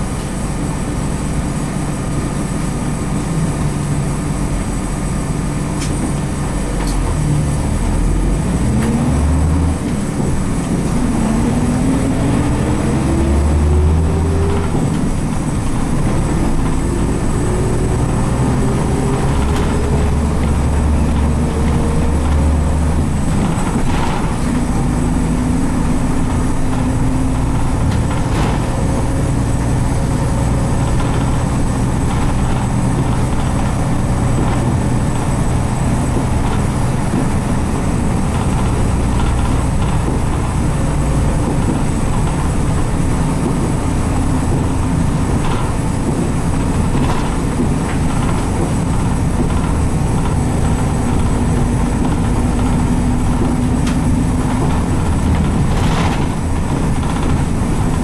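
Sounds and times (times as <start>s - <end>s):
bus diesel engine droning: 0.0s - 58.0s
body knocks and rattles: 14.2s - 58.0s.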